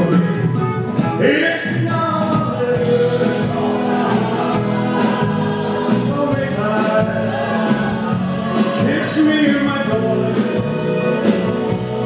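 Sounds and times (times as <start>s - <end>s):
drums: 0.0s - 12.0s
guitars: 0.0s - 12.0s
man singing into microphone: 1.2s - 4.0s, 5.9s - 7.4s, 8.7s - 10.9s
backing choir singing: 2.3s - 12.0s.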